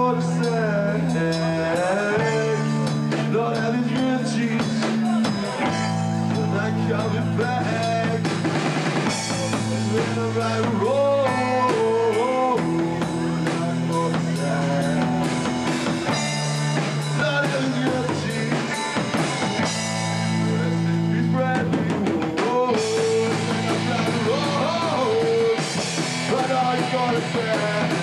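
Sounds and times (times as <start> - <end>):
drum kit: 0.0 - 28.0
electric guitars: 0.0 - 28.0.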